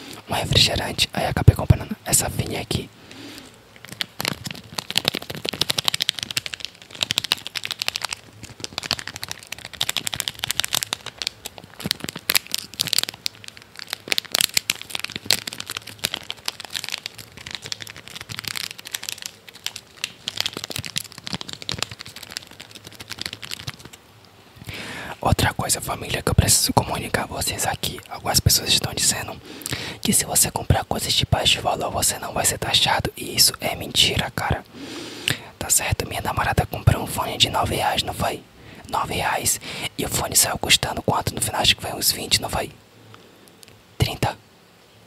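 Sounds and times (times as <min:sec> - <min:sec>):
plastic wrapper crinkling: 0:03.4 - 0:33.0.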